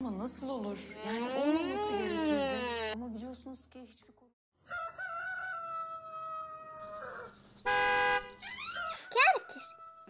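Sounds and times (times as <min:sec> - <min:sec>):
rooster crowing: 0:04.6 - 0:07.4.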